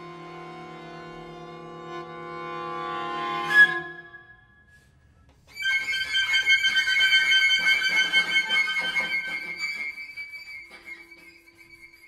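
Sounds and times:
flute: 3.3s - 12.0s.

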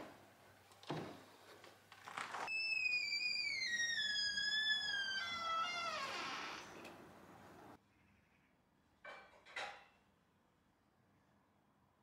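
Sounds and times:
door hinge squealing whistle: 2.5s - 6.9s.

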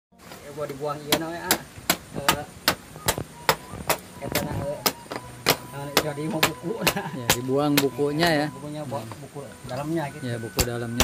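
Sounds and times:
hatchet chopping bamboo: 0.2s - 8.1s, 10.5s - 11.0s.

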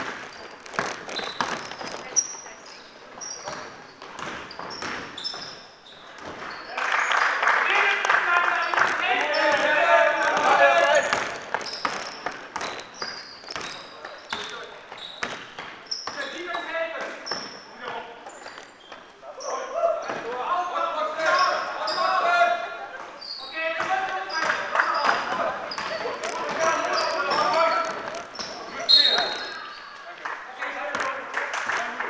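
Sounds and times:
basketball bouncing on floor: 0.0s - 2.2s, 3.4s - 5.6s, 10.4s - 16.6s
shoe squeaks: 0.0s - 7.2s, 8.5s - 20.0s, 21.2s - 22.4s, 23.1s - 30.1s
players shouting in echoing hall: 6.7s - 11.8s, 19.2s - 31.3s.

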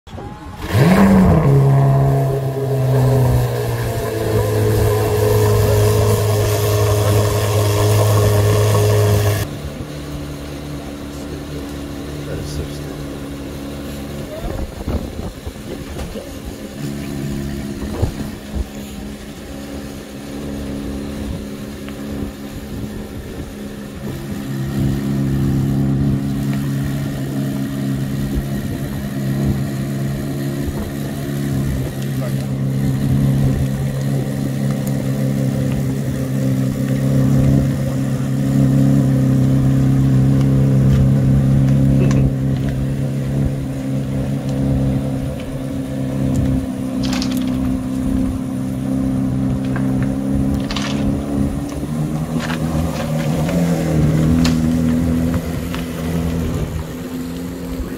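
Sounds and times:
car engine idling: 0.1s - 57.9s.

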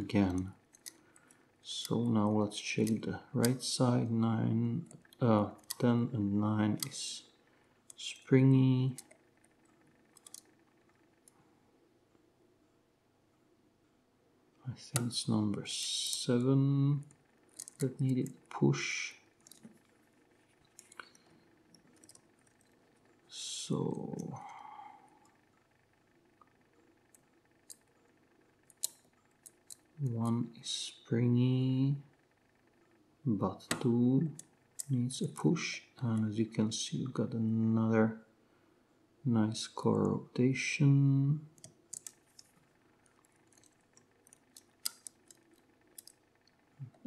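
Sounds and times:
lock pick clicking: 44.3s - 46.2s.

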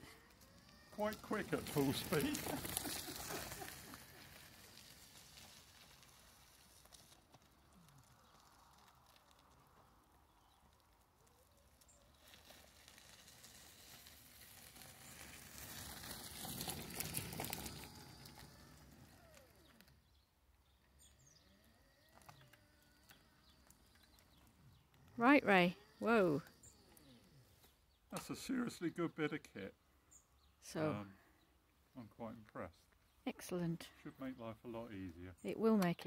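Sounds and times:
wheelchair tyres crunching on gravel: 0.0s - 20.3s, 20.9s - 28.8s.

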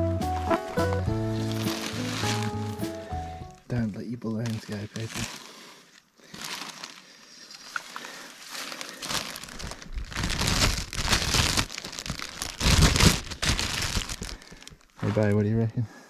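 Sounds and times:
foil balloon crinkling: 0.2s - 15.6s.

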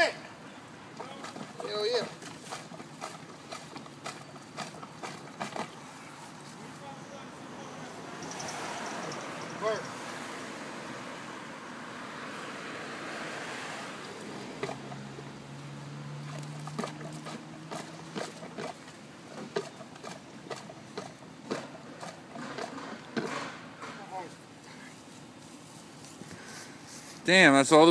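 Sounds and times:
pipe knocking in sewer cleanout: 14.4s - 15.3s, 16.3s - 24.0s.

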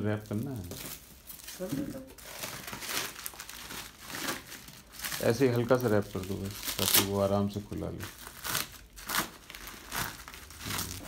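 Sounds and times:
plastic wrap crinkling: 0.0s - 11.0s.

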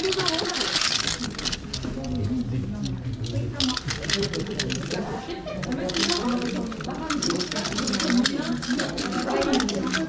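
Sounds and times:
toy cars clicking and rattling: 0.0s - 10.0s
voices talking in background: 0.0s - 10.0s.

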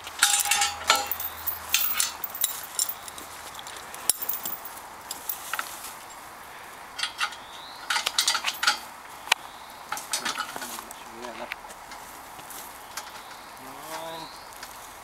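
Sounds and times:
steel chain clinking: 0.2s - 5.7s, 7.9s - 8.8s.

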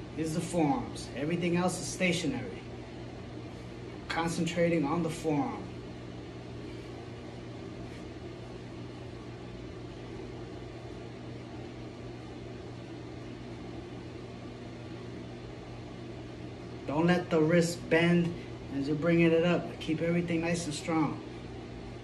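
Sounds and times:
low room hum: 0.0s - 22.0s.

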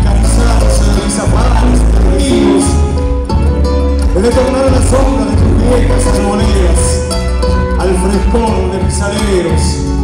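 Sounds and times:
men singing: 0.0s - 2.9s, 4.2s - 7.0s
acoustic guitar: 0.0s - 10.0s
electric bass: 0.0s - 10.0s.

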